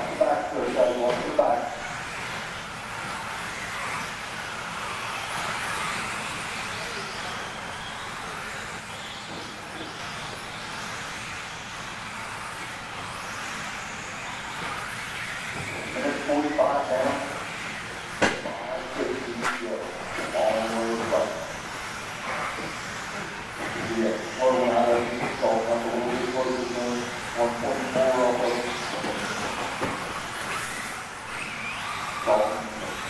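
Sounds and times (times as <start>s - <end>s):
rc cars motors whining: 0.0s - 33.0s.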